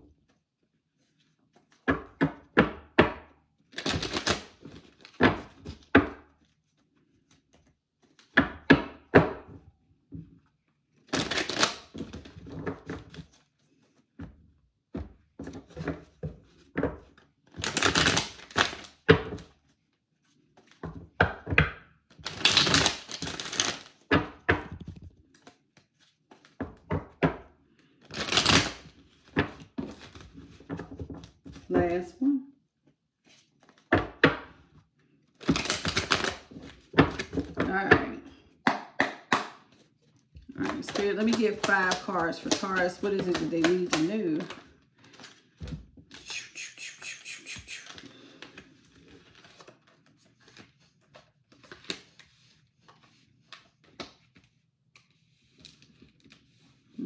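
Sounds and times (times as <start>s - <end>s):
cards riffling and clicking: 39.8s - 56.7s.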